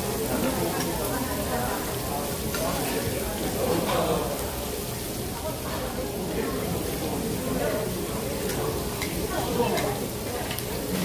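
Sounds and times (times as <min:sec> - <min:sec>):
pork sizzling on grill plate: 0:00.0 - 0:11.0.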